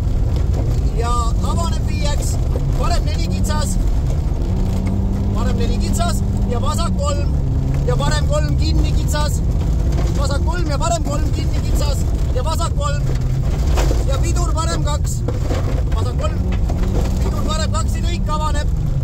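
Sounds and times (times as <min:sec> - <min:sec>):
rally car engine running: 0:00.0 - 0:19.0
tyres rumbling on gravel: 0:00.0 - 0:19.0.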